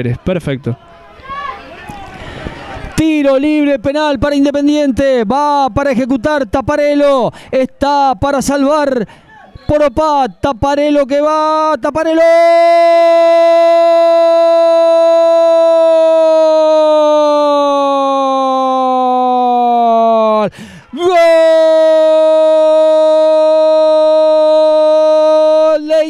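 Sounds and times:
commentator's drawn-out goal cry: 8.6 - 26.0.

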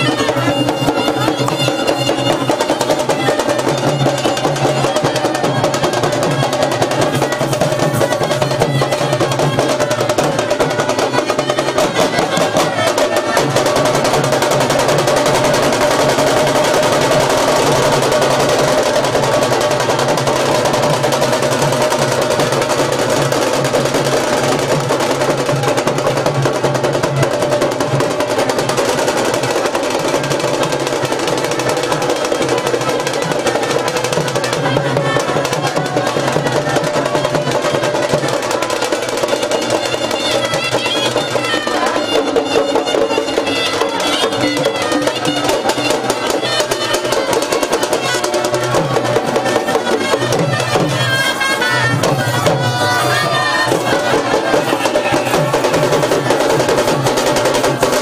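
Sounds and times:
horns holding melody: 0.0 - 23.4, 31.4 - 58.0
drum roll: 0.0 - 58.0.

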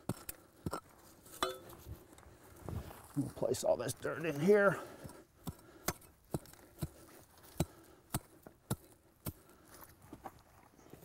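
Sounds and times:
metallic clink: 1.4 - 1.8
digging tool chopping into clay: 5.4 - 9.4.

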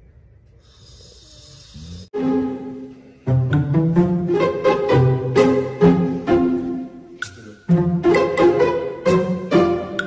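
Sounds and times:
squeaky snort: 0.7 - 2.1
snoring: 0.7 - 2.2.

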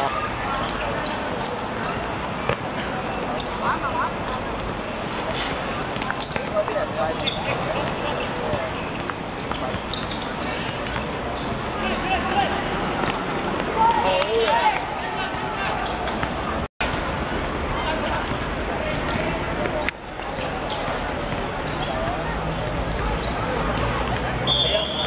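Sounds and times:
players shouting: 9.6 - 16.7.

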